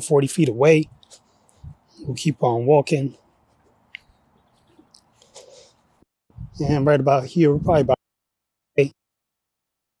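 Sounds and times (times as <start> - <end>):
clothing rustle on microphone: 3.4 - 6.8
faint breathing: 5.2 - 6.0.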